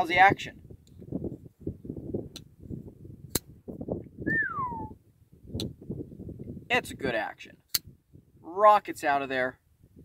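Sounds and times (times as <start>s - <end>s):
falling whistled note: 4.3s - 5.0s.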